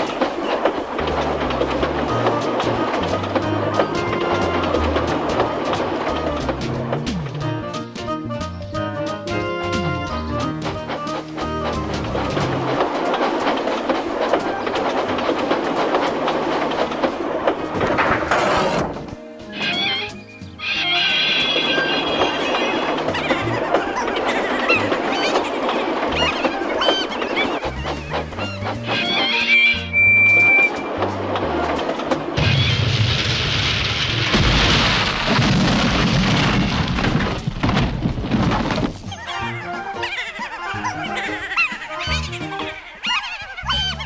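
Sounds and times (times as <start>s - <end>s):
high squealing tones: 0.0s - 32.9s
train wheels clicking over rail joints: 0.0s - 44.0s.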